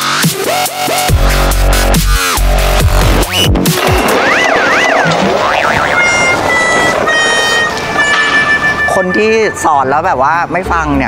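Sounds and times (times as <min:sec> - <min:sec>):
noisy background: 0:00.0 - 0:11.0
high synthetic tones: 0:01.2 - 0:10.0.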